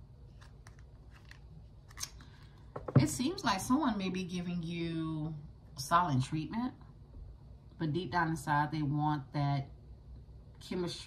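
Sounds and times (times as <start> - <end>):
playing cards shuffling: 0.3 - 2.4.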